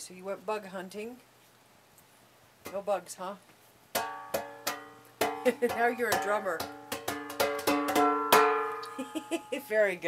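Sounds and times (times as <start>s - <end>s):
hanging metal struck and ringing: 4.0s - 9.9s.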